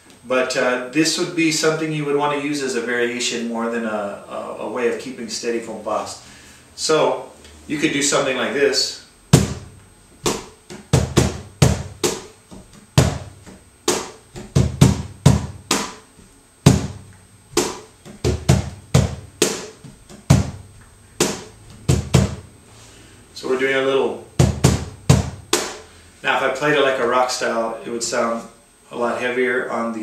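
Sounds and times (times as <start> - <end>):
cajon played by hand: 9.4 - 16.0, 16.7 - 22.5, 24.4 - 25.8.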